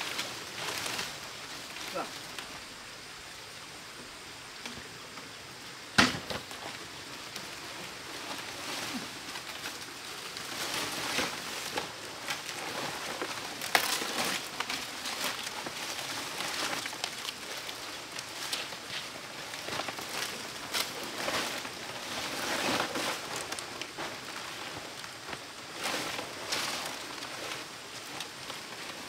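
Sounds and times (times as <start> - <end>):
palm fronds rustling and crackling: 0.0 - 29.0
sharp knock: 6.0 - 6.4.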